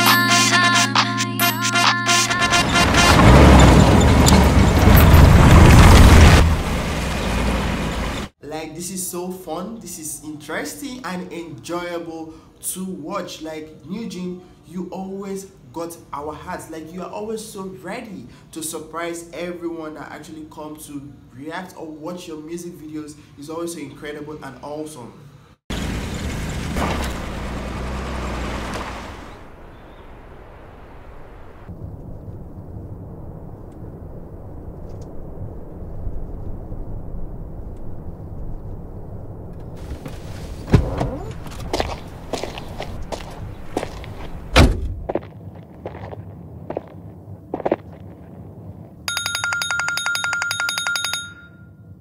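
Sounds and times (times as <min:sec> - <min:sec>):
bell-like telephone ring: 0:00.0 - 0:02.5, 0:49.1 - 0:52.0
car engine and road rumble: 0:02.4 - 0:08.4, 0:25.7 - 0:34.2, 0:37.6 - 0:49.1.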